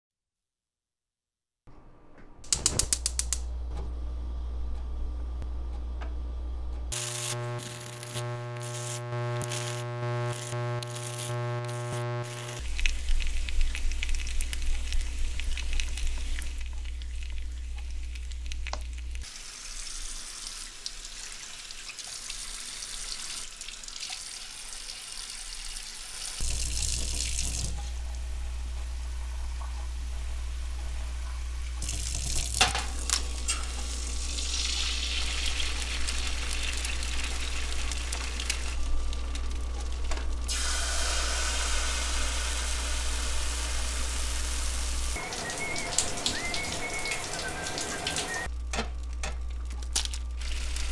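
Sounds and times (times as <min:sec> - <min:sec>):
steady buzz: 0:02.5 - 0:13.1
egg sizzling in frying pan: 0:12.3 - 0:28.1, 0:28.8 - 0:50.9
tap water running into sink: 0:19.8 - 0:28.1, 0:31.8 - 0:38.4, 0:45.2 - 0:48.5.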